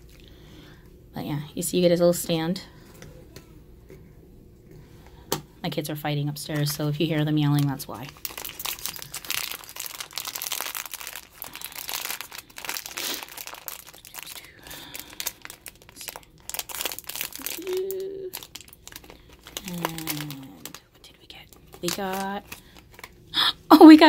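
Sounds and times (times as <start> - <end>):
plastic wrapper crinkling: 6.5 - 23.3.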